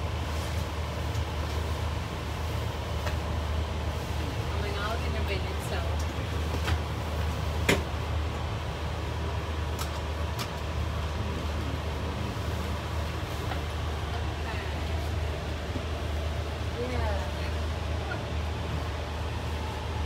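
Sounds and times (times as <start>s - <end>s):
low engine rumble: 0.0s - 20.0s.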